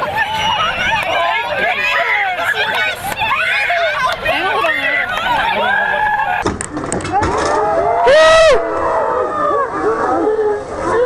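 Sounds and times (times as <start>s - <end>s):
people shouting and laughing: 0.0s - 11.0s
knocks and water splashes: 6.4s - 7.7s.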